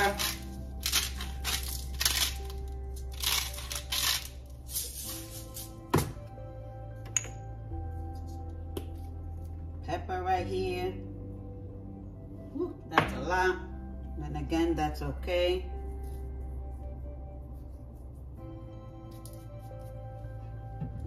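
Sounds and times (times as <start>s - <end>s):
background music with bass: 0.0s - 21.0s.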